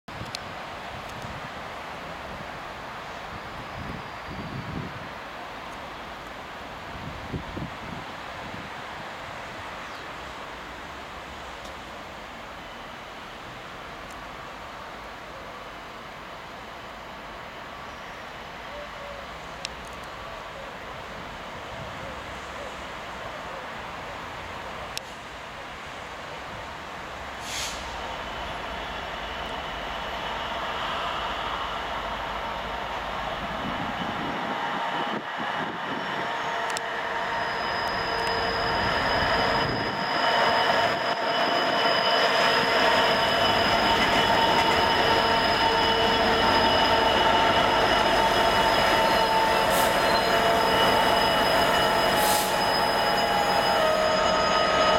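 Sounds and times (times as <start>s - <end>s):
diesel locomotive engine: 0.1s - 54.9s
train wheels squealing: 3.4s - 4.9s, 27.4s - 54.9s.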